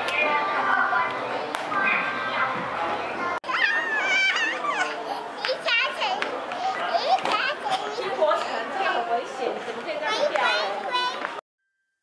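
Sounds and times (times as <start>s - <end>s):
children laughing and squealing: 3.4s - 7.9s.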